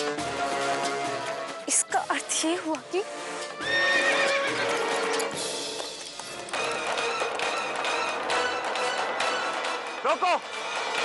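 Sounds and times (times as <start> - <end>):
background music: 0.0 - 11.0
horse whinnying: 3.6 - 5.3.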